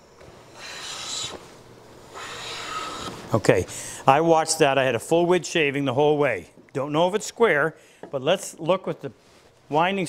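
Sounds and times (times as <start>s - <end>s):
hand plane cutting wood: 2.2s - 3.2s.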